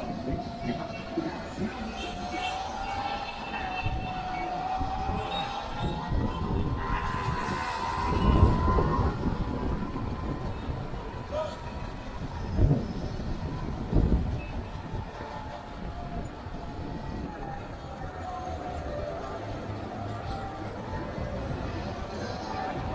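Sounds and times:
wind buffeting microphone: 0.0s - 22.9s
electric dirt bike motor whining: 2.1s - 11.2s.

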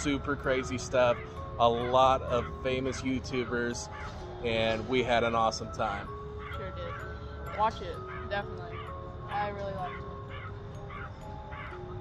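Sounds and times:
birds calling: 0.0s - 12.0s
faint steady held tones: 0.0s - 12.0s.

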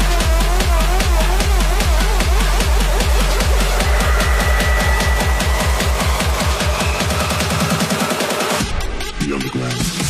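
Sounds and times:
deep bass: 0.0s - 10.0s
held high synth note: 2.5s - 8.4s.

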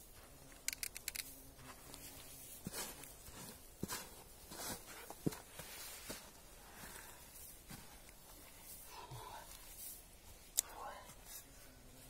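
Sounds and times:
sharp click: 0.6s - 1.3s.

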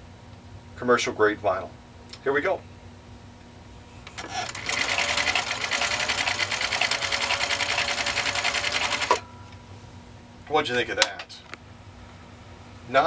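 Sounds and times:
sewing machine stitching: 4.1s - 9.2s.

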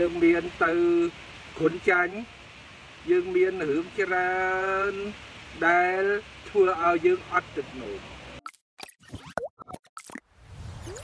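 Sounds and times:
cartoon pops and plops: 8.4s - 11.0s
whoosh with low rumble: 10.3s - 11.0s.

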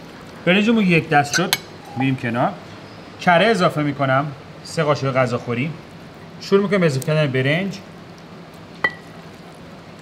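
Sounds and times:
metal spoon clinking bowl: 1.3s - 1.7s.

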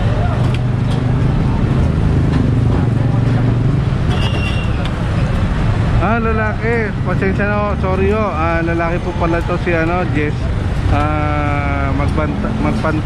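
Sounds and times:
street traffic noise: 0.0s - 13.0s.

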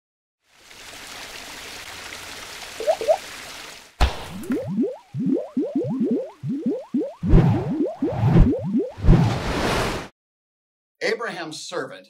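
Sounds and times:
short rising bloops: 2.8s - 3.2s, 4.3s - 9.4s.

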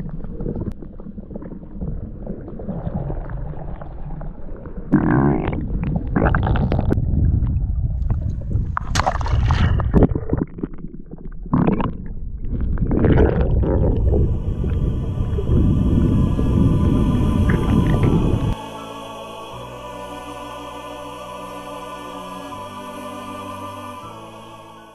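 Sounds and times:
water rushing and gurgling: 13.0s - 24.9s.

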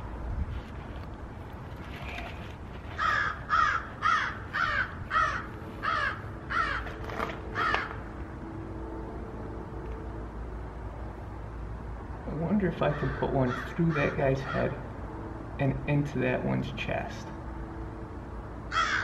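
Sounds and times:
crow cawing: 3.0s - 8.1s, 12.8s - 14.8s, 18.7s - 19.0s.

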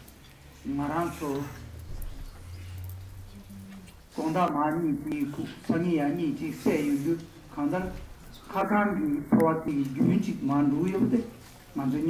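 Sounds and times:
monks humming low: 0.4s - 9.1s.

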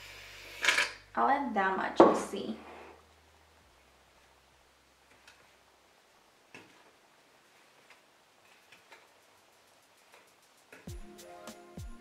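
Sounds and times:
faint crackles from kneading mixture: 5.0s - 10.9s.

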